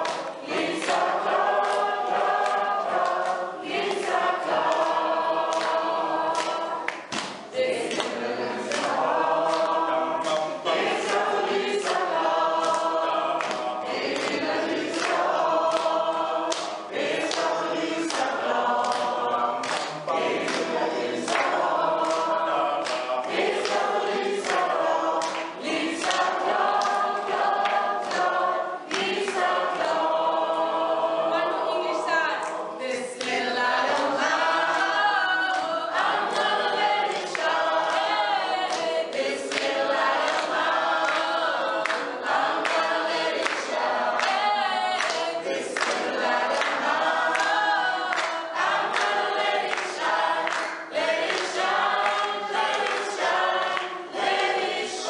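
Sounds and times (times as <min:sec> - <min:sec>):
hand claps: 0:00.0 - 0:30.7, 0:33.2 - 0:55.0
group singing in harmony: 0:00.0 - 0:55.0.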